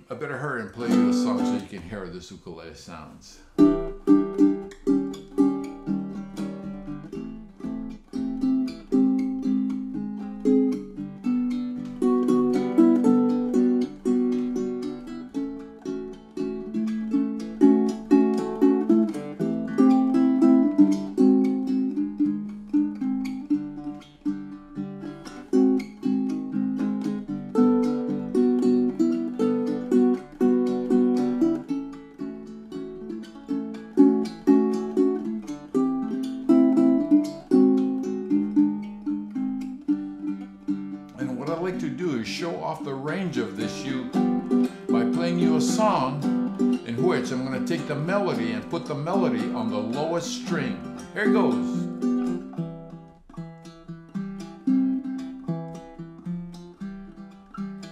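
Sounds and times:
ukulele plucked melody and chords: 0:00.0 - 0:02.1, 0:03.4 - 0:57.9.

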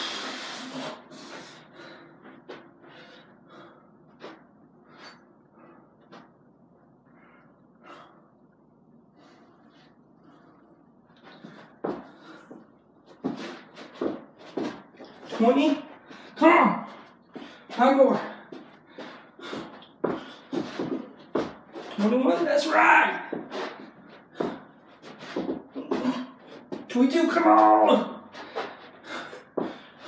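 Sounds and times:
man breathing hard: 0:00.0 - 0:06.1, 0:07.0 - 0:08.5, 0:09.1 - 0:15.2, 0:15.9 - 0:21.9, 0:23.3 - 0:26.8, 0:28.3 - 0:30.0.

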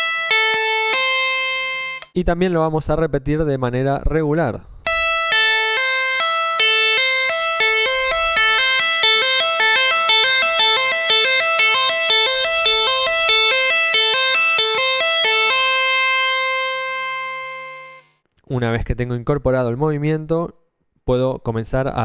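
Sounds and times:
clean electric guitar tapping notes: 0:00.0 - 0:02.2, 0:04.8 - 0:18.1.

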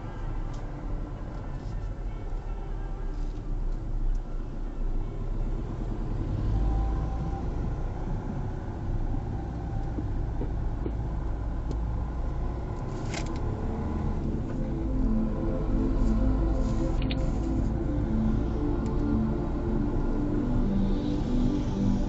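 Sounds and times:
tyre and engine rumble: 0:05.5 - 0:22.0.

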